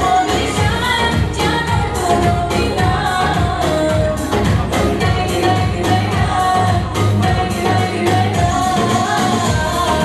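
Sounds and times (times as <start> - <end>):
band backing with bass beat: 0.0 - 10.0
woman singing pop song: 0.0 - 10.0.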